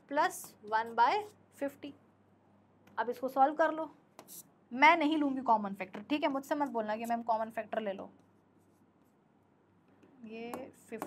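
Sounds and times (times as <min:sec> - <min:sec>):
stylus scratching on screen: 0:04.2 - 0:04.5.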